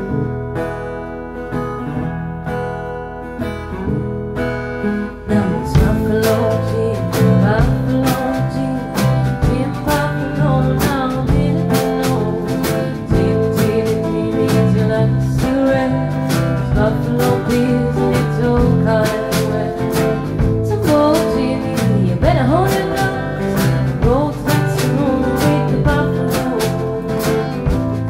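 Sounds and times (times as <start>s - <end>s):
sliding lead guitar line: 0.0s - 28.0s
band playing instrumental: 5.4s - 28.0s.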